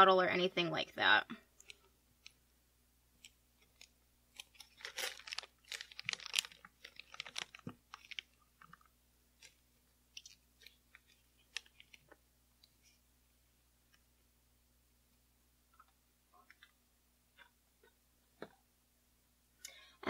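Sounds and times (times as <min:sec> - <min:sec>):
plastic bag and gel squelching: 0:03.6 - 0:12.2.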